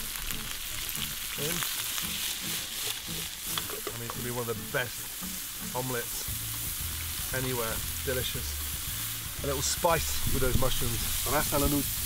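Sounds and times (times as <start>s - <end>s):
mushrooms sizzling in oil: 0.0s - 12.0s.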